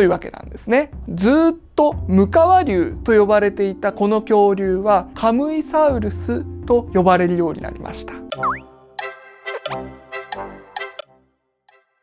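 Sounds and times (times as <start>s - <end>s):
cartoon boing: 8.3s - 8.7s
bouncy children's music jingle: 8.3s - 12.0s.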